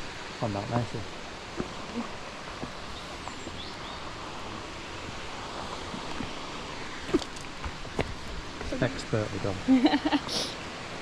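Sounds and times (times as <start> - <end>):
river water flowing: 0.0 - 11.0.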